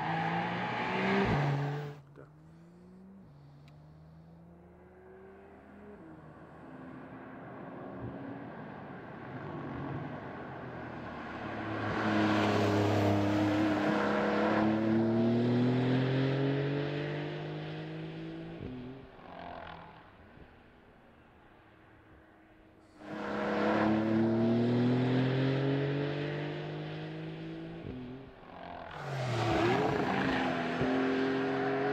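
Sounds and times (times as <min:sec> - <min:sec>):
car engine accelerating: 0:23.0 - 0:31.9.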